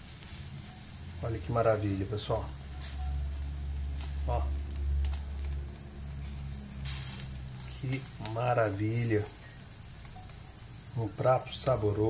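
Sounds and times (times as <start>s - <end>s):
cheese sizzling in a skillet: 0.0s - 12.0s
steady low hum: 0.0s - 12.0s
tongs clicking: 4.0s - 5.6s, 9.4s - 10.9s.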